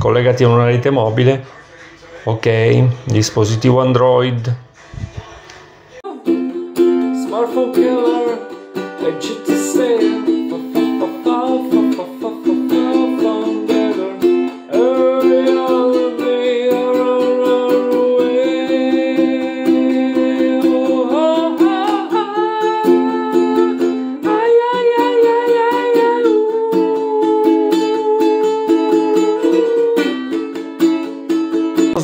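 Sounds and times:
man singing: 5.9 - 30.6
ukulele strumming: 6.0 - 32.0.

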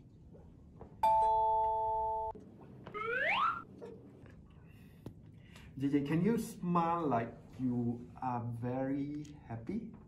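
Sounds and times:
bell-like chime ding: 1.0 - 2.3.

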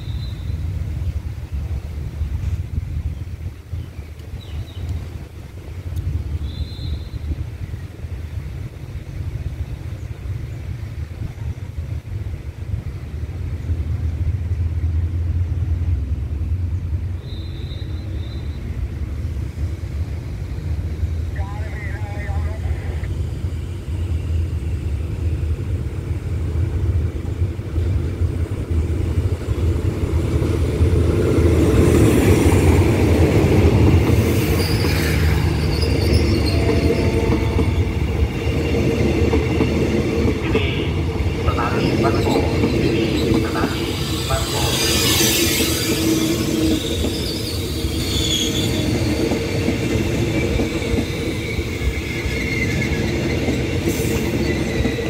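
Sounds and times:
train rolling past: 0.0 - 55.0.

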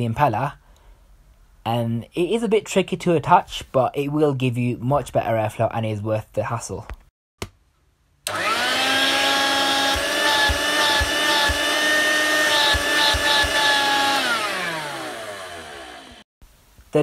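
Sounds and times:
hand vacuum motor whine: 8.3 - 16.3.

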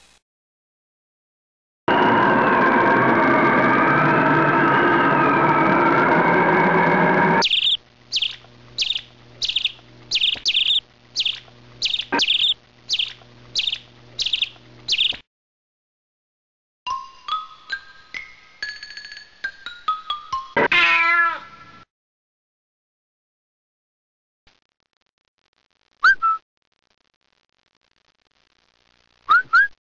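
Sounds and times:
sustained steady tones: 1.9 - 14.8
faint low hum: 7.4 - 15.2
high bird chirps: 7.4 - 15.2.

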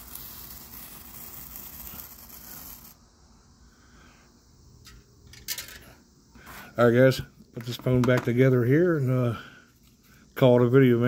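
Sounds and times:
sparkler fizzing: 0.0 - 3.0.

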